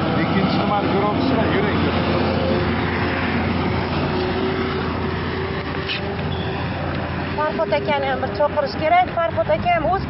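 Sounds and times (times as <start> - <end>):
road traffic rushing: 0.0 - 10.0.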